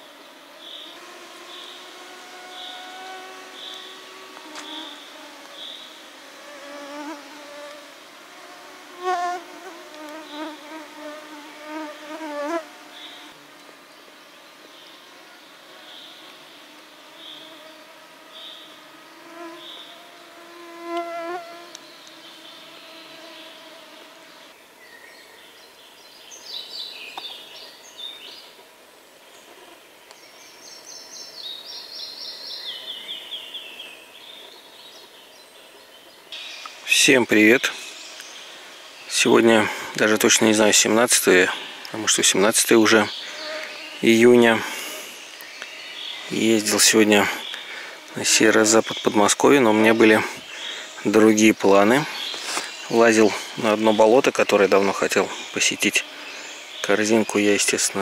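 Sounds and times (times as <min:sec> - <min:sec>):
flying insects buzzing: 0:00.0 - 0:58.0.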